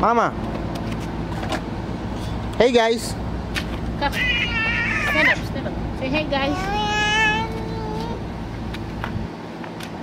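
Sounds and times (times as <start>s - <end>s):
toddler high-pitched vocal sound: 4.1s - 5.5s, 6.4s - 8.3s.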